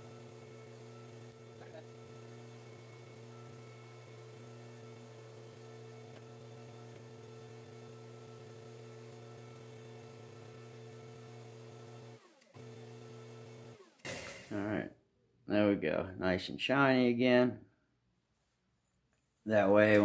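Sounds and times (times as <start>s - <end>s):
belt grinder motor hum: 0.0s - 14.6s.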